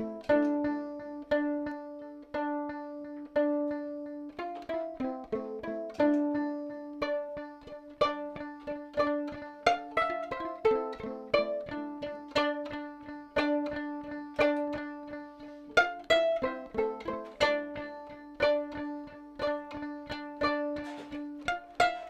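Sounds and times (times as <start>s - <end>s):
violin plucked pizzicato: 0.0s - 22.0s.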